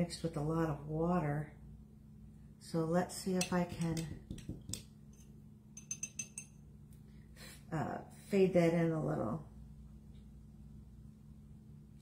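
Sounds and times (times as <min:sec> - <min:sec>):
paintbrush knocking glass jar: 0:03.4 - 0:04.9, 0:05.8 - 0:06.6.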